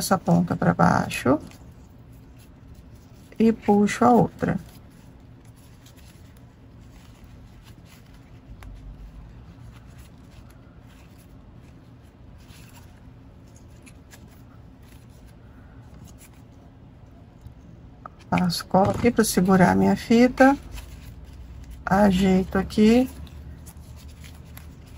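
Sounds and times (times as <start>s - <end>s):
ribbon rustling in hands: 0.0s - 24.9s.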